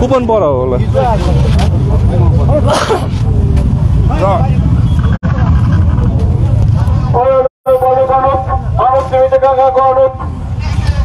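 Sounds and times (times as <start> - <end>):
crowd voices talking: 0.0 - 4.8, 5.4 - 11.0
low rumble: 0.6 - 11.0.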